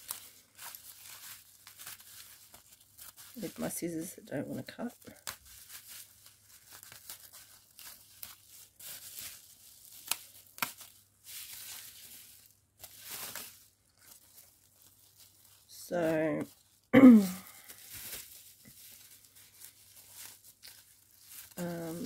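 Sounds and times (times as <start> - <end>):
bubble wrap crinkling: 0.0 - 22.0.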